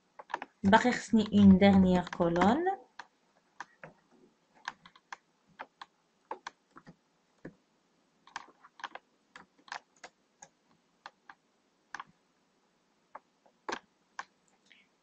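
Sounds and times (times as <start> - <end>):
keyboard keys clicking: 0.2 - 2.6.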